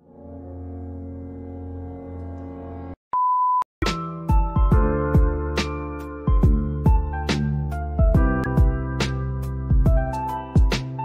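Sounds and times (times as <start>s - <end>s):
low droning tone: 0.0s - 3.0s
background music with struck notes: 3.8s - 11.0s.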